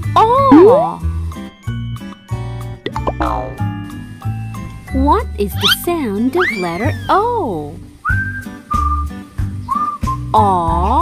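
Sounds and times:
children's backing track with bass beat: 0.0s - 11.0s
whistled tune: 8.0s - 10.4s.

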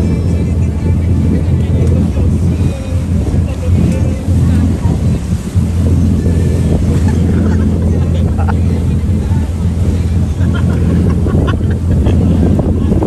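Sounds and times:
motorboat engine drone: 0.0s - 13.0s.

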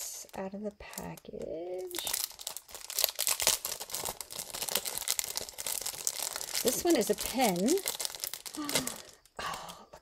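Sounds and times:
plastic bag crinkling: 0.0s - 9.8s.

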